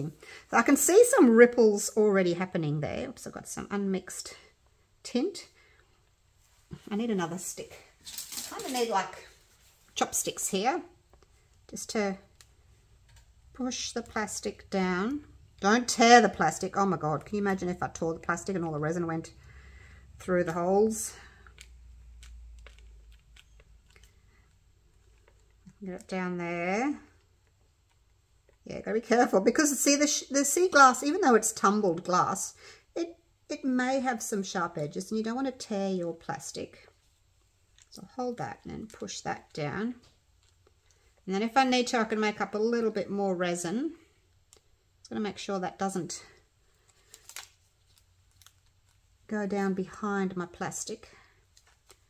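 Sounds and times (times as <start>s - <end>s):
plastic film rustle: 8.0s - 10.0s, 46.6s - 49.3s, 51.4s - 52.0s
wooden sticks clicking and tapping: 21.4s - 24.2s.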